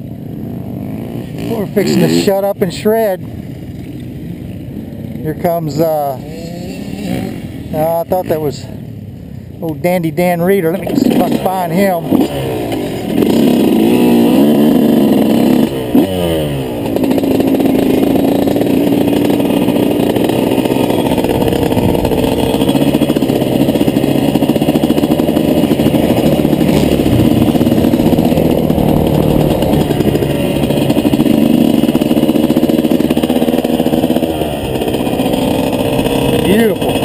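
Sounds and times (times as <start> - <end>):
dirt bike engine running: 0.0 - 37.0.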